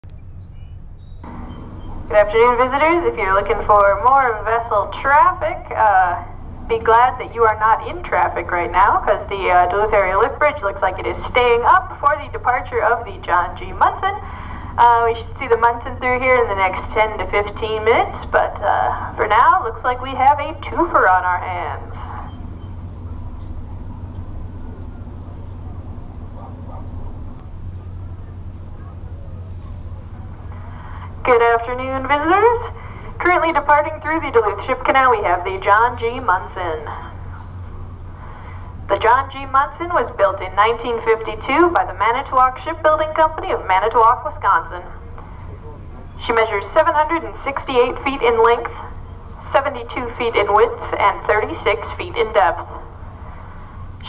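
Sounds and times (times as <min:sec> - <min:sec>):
low rumble: 0:00.0 - 0:54.0.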